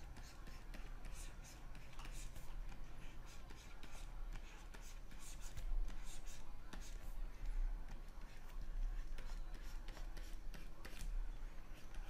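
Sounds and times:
stylus scratching on tablet: 0.0s - 12.0s.

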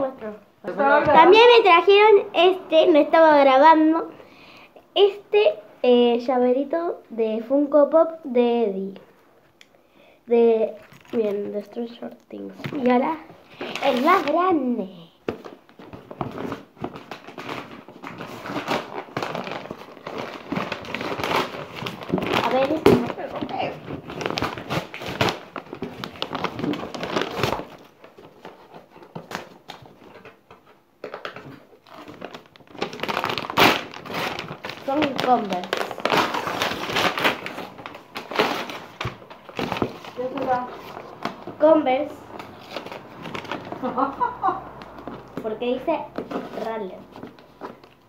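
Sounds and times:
wrapping paper crackling: 10.6s - 48.0s.

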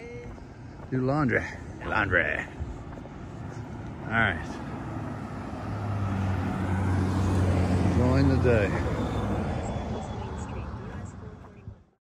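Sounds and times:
pickup truck engine hum: 1.7s - 12.0s.

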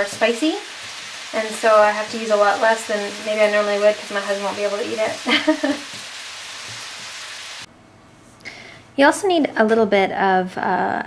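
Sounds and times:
steady hiss: 0.0s - 7.7s.

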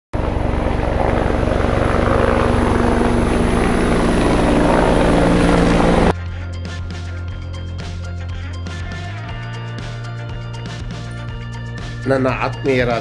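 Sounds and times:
chopping low rumble: 0.2s - 6.1s.

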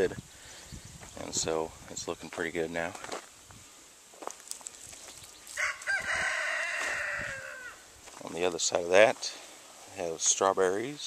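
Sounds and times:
rooster crowing: 5.5s - 7.8s.

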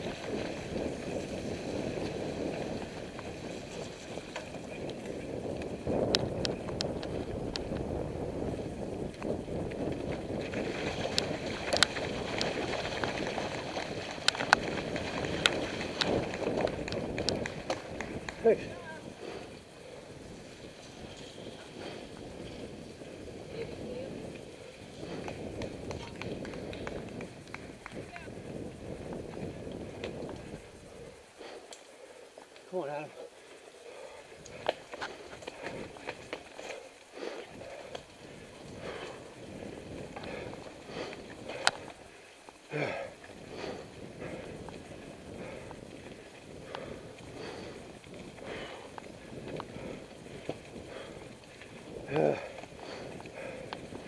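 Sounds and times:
bike clicking and knocking over bumps: 0.0s - 7.9s, 9.0s - 18.7s
wind and tyre noise: 0.0s - 54.0s
heavy breathing: 19.0s - 20.5s, 21.6s - 23.8s, 24.4s - 25.6s, 30.4s - 32.6s, 33.2s - 54.0s.

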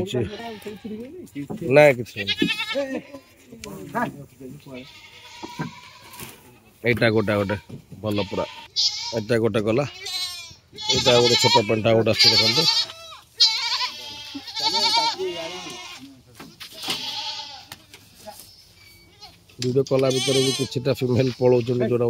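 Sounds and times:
goats bleating: 0.0s - 1.2s, 2.1s - 3.6s, 4.6s - 18.2s, 19.0s - 22.0s.

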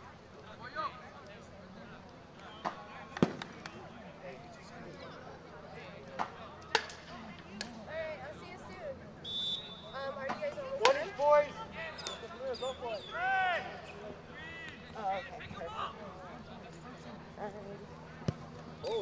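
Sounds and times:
short high whistle: 9.2s - 9.9s
players shouting: 9.3s - 16.2s
ball being kicked: 18.2s - 18.5s.

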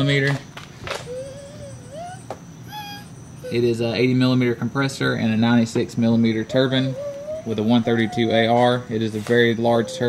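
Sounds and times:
high wavering whine-like call: 1.1s - 4.1s.

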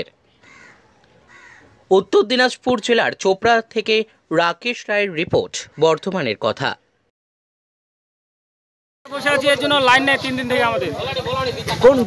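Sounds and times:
crow cawing: 0.3s - 1.8s.

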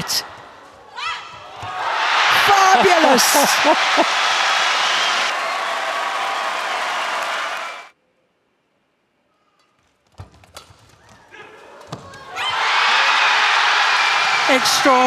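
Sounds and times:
crowd cheering and applauding: 1.7s - 7.9s, 12.3s - 15.0s.

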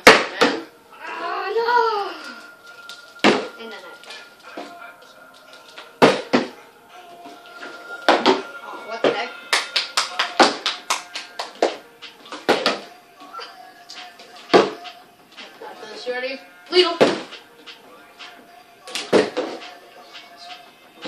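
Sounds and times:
faint music: 0.0s - 21.0s.

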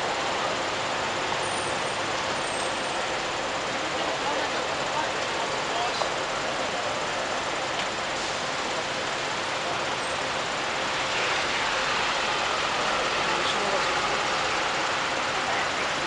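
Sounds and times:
traffic: 0.0s - 16.0s
murmur of crowd voices: 3.7s - 12.0s, 12.9s - 16.0s.

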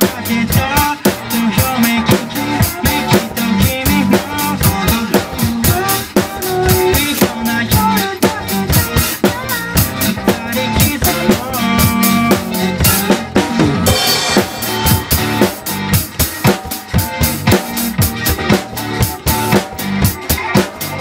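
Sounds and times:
acoustic drum kit beat: 0.0s - 21.0s
pop dance backing track: 0.0s - 21.0s.

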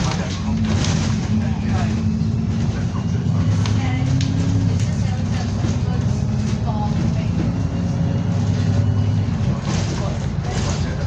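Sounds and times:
bus diesel engine droning: 0.0s - 11.0s.

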